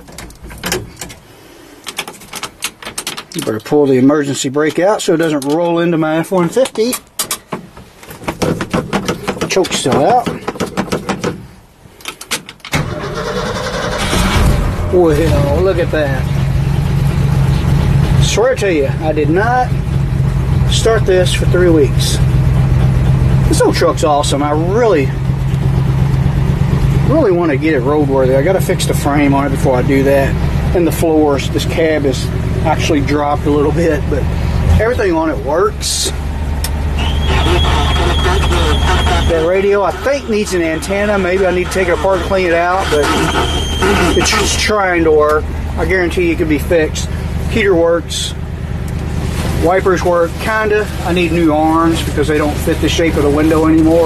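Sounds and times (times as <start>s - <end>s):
engine cranking and starting: 12.6s - 18.1s, 36.6s - 46.2s
pickup engine idling: 12.8s - 54.0s
radio high whistle: 36.9s - 40.9s, 42.8s - 44.5s
faint garbled radio sound: 37.0s - 44.7s.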